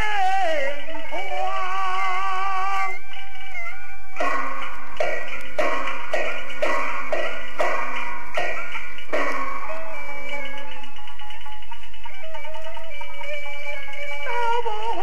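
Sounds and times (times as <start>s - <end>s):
instrumental accompaniment: 0.0s - 15.0s
opera percussion striking: 4.2s - 10.9s.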